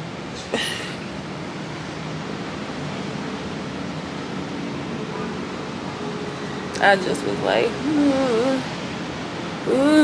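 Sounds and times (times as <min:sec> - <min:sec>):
room noise hiss: 0:00.0 - 0:10.0.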